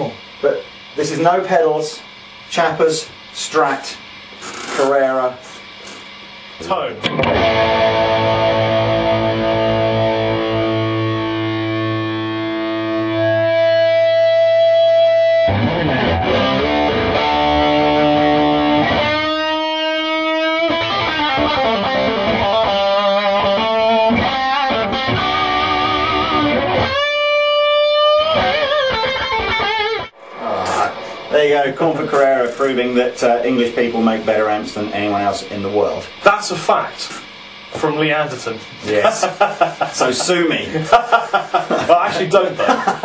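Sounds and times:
electric guitar through valve amp: 0:00.0 - 0:43.0.

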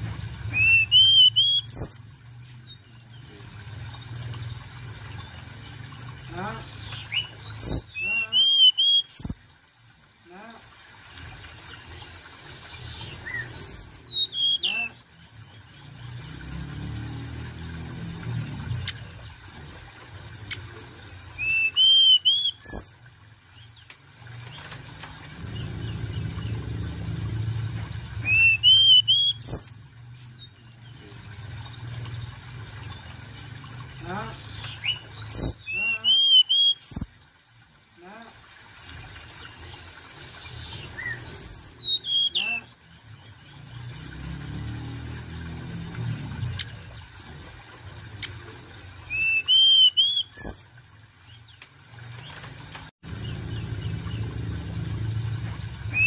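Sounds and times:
bird singing: 0:00.0 - 0:05.4, 0:06.3 - 0:10.0, 0:12.3 - 0:33.1, 0:34.0 - 0:37.2, 0:40.0 - 0:56.0.

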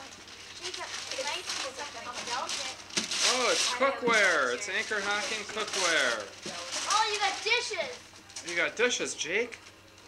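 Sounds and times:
wrapping paper rustling and tearing: 0:00.0 - 0:10.0.

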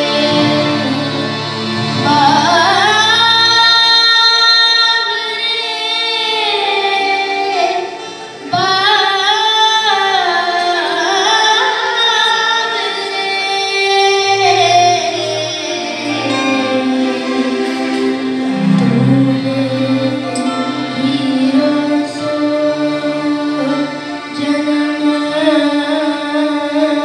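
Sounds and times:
child singing into a microphone: 0:00.0 - 0:18.0, 0:18.9 - 0:27.0
harmonium: 0:00.0 - 0:27.0.

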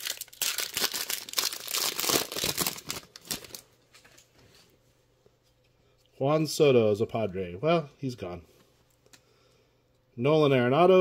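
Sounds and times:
foil wrapper tearing and crinkling: 0:00.0 - 0:03.6.

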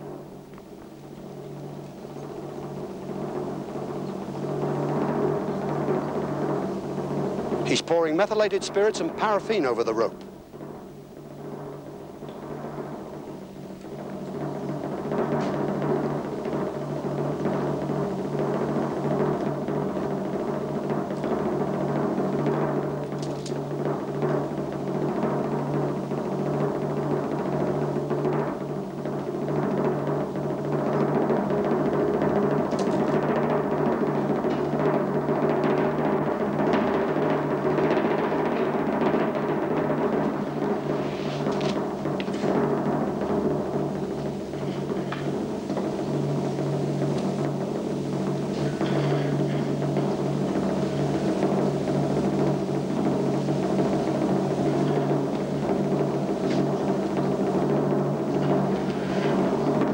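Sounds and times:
timpani roll: 0:00.0 - 0:59.9.

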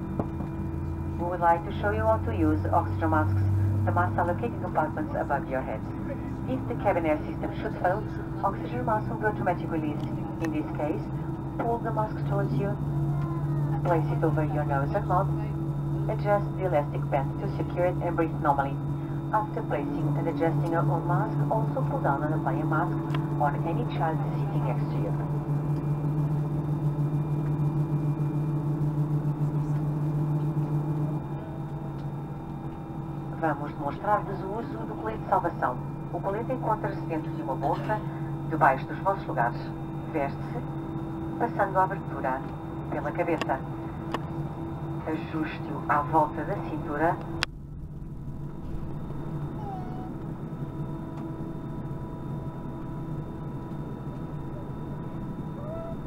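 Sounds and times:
airplane cabin hum: 0:00.0 - 0:56.0
steady whining tones: 0:00.0 - 0:56.0.

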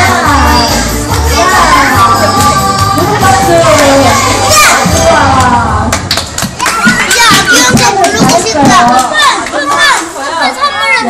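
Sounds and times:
children chattering and calling: 0:00.0 - 0:05.7, 0:06.5 - 0:11.0.

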